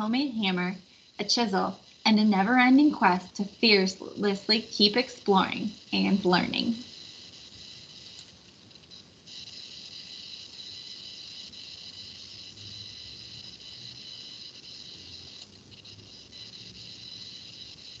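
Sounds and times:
faint low hum: 0.0s - 18.0s
high-pitched recording hiss: 0.0s - 18.0s.

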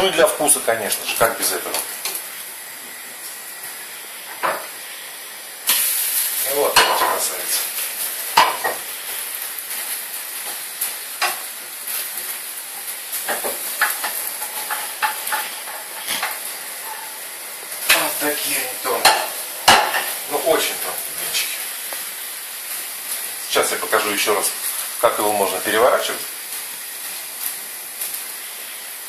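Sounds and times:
pancakes sizzling in frying pans: 0.0s - 29.0s
wooden spatula scraping pans: 13.3s - 17.2s.

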